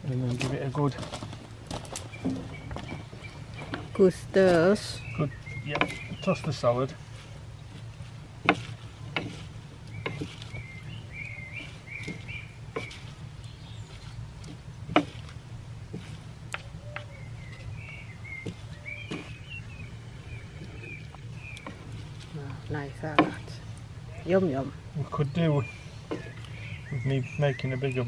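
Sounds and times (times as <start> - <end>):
birds singing: 0.0 - 28.0
wooden servers knocking on wooden bowl: 0.4 - 6.7, 8.4 - 13.2, 13.9 - 19.5, 20.5 - 23.6, 26.0 - 26.6.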